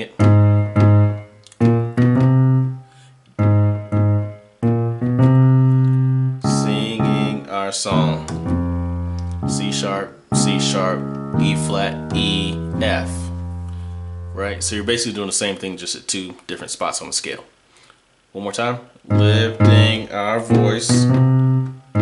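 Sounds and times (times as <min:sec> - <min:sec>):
digital piano gospel chords: 0:00.0 - 0:16.1, 0:19.0 - 0:22.0
person singing: 0:19.1 - 0:21.3.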